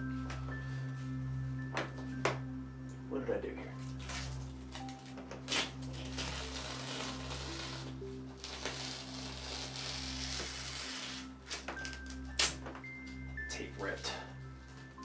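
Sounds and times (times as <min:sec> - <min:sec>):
masking tape tearing off canvas: 0:04.0 - 0:12.6
tape strips snapping: 0:04.0 - 0:12.9.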